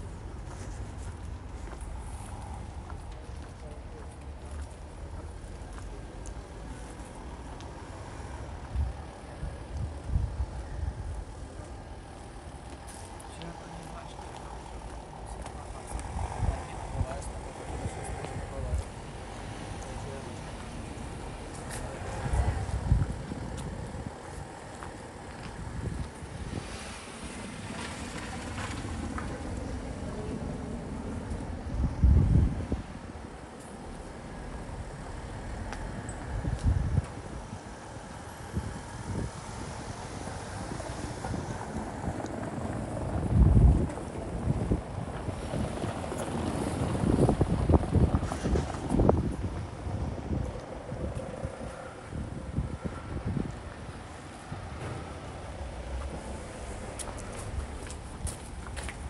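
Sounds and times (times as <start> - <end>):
traffic going by: 0.0 - 59.0
wind buffeting microphone: 0.0 - 59.0.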